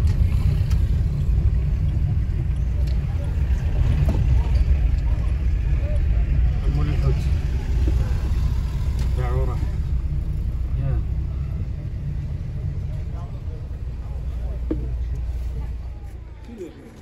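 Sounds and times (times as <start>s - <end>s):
car engine and road rumble: 0.0s - 17.0s
street voices: 0.0s - 17.0s.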